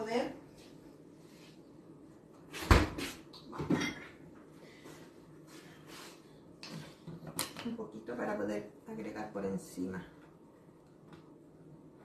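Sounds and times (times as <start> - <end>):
low kitchen room noise: 0.0 - 12.0.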